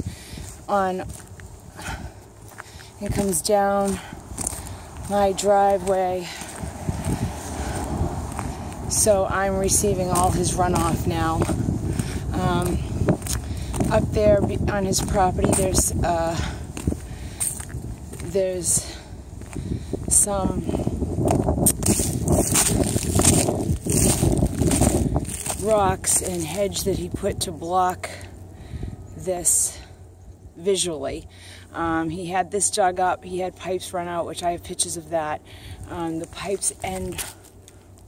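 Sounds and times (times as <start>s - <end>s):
footsteps on gravel: 0.0s - 28.5s, 31.7s - 38.0s.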